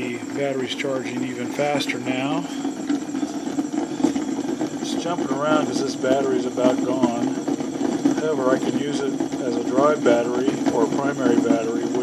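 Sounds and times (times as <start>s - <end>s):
pulse motor buzzing: 0.0s - 12.0s.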